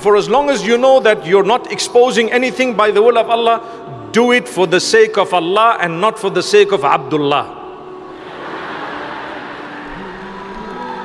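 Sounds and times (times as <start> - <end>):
murmur of crowd in a hall: 7.4 - 11.0.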